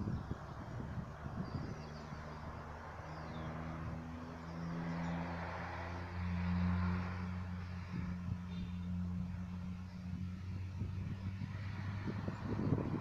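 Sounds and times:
vehicle engine passing: 0.0s - 13.0s.

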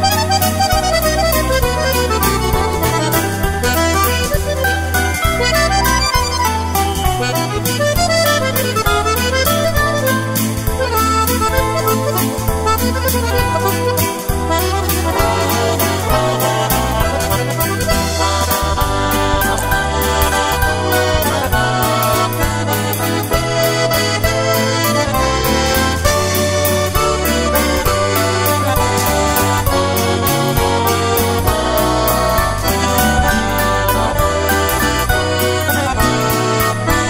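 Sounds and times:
accordion playing a waltz: 0.0s - 37.0s.

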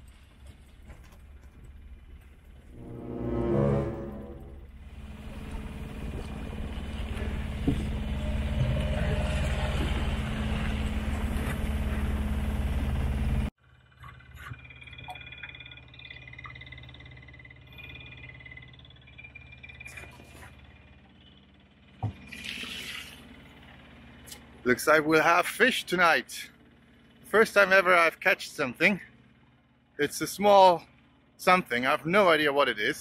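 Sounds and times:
steady low hum: 0.0s - 22.3s.

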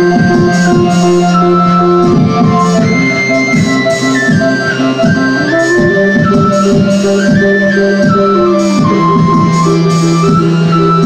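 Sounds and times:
pulsing synth bass: 0.0s - 11.0s
synthesizer lead melody: 0.0s - 11.0s.

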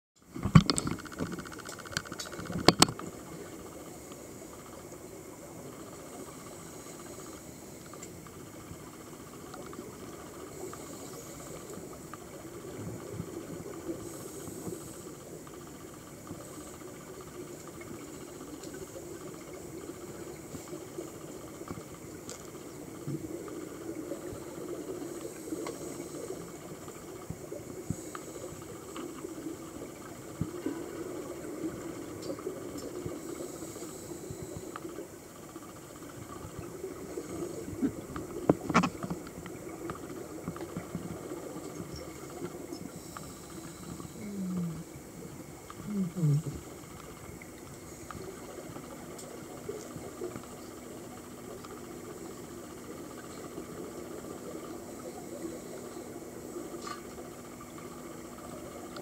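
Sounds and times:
scattered crackles: 0.3s - 59.0s
regulator breathing hiss: 5.9s - 8.0s, 10.2s - 12.0s, 13.8s - 17.0s, 33.0s - 36.0s, 42.7s - 45.2s.

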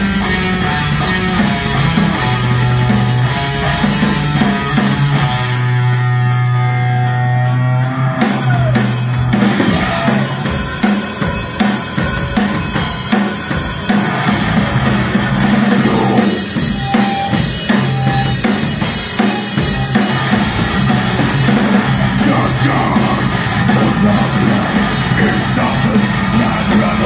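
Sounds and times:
drum kit beat: 0.0s - 27.0s
live metal band playing: 0.0s - 27.0s.

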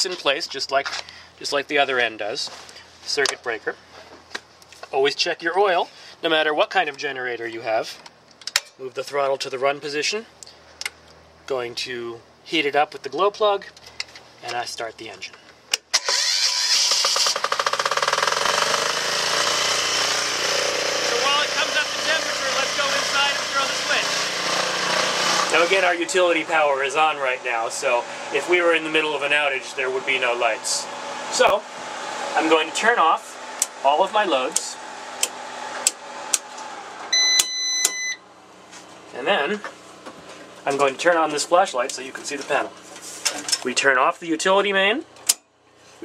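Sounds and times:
diesel generator running: 16.0s - 43.3s
steady background hum: 19.3s - 46.0s
circuit breakers clicking off: 34.4s - 38.1s
steady electronic beep: 37.1s - 38.2s.

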